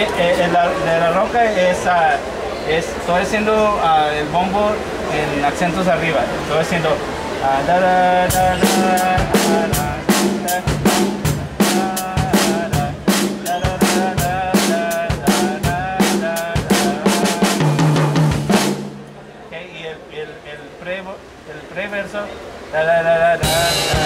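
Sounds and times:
bass drum: 8.4 - 19.2
snare drum: 8.4 - 19.2.

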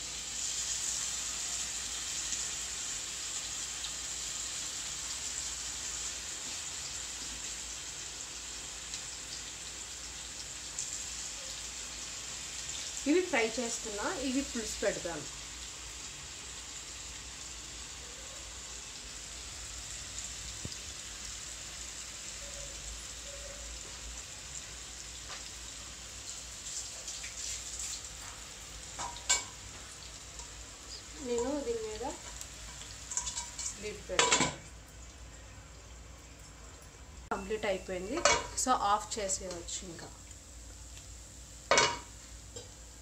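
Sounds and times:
fish sizzling in oil: 0.0 - 43.0.

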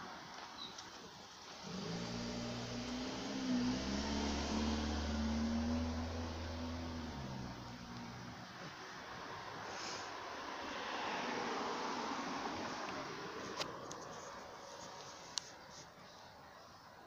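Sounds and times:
background traffic: 0.0 - 17.0
vehicle engine humming: 1.5 - 9.6.

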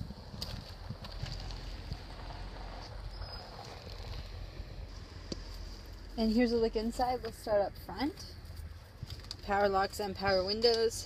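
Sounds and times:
low rumble: 0.0 - 9.2.

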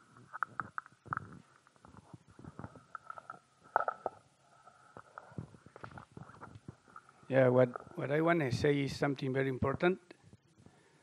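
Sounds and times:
microphone handling noise: 0.2 - 4.2, 5.0 - 7.1.

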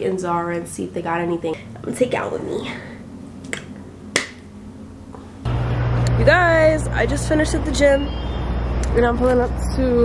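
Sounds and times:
low rumble of street traffic: 0.0 - 10.0
sharp snap: 3.5 - 4.5.

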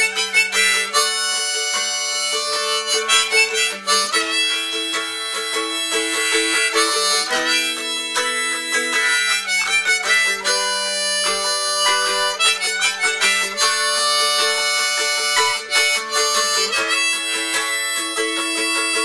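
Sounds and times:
harmonica chords and melody: 0.0 - 19.0
picked mandolin: 0.0 - 19.0.

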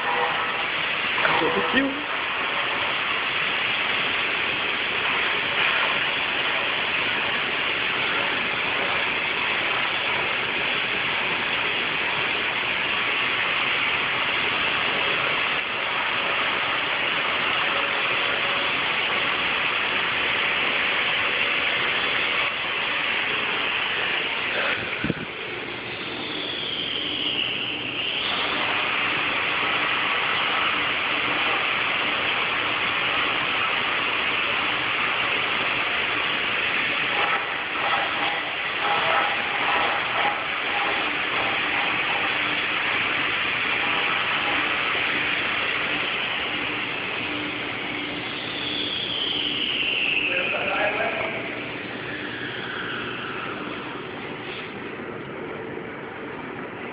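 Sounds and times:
stone-cutting saw running: 0.0 - 54.7
high whine: 0.0 - 56.9.

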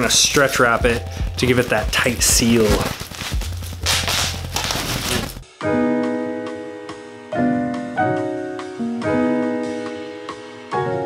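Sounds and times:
plastic wrap rustling: 0.9 - 5.4
solo piano music: 5.6 - 11.0.

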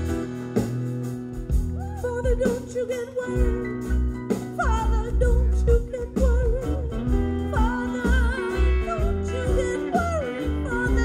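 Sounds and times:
electric guitar: 0.0 - 11.0.

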